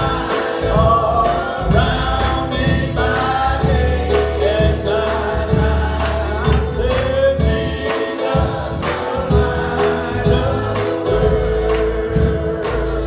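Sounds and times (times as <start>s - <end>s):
choir singing gospel: 0.0s - 13.0s
steady beat: 0.0s - 13.0s.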